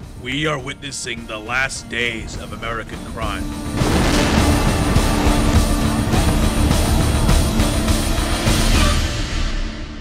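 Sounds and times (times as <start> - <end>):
music: 0.0 - 10.0
irregular sharp hits: 3.4 - 9.0.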